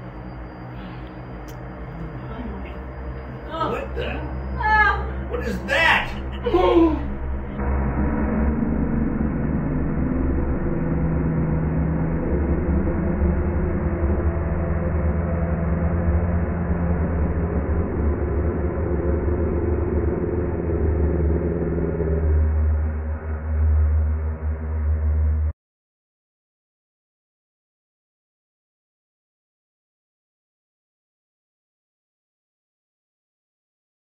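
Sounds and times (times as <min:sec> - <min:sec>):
ominous low rumbling drone: 0:00.0 - 0:25.6.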